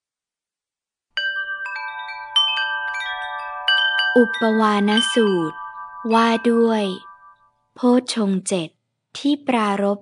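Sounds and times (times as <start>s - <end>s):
chimes ringing: 1.2s - 7.7s.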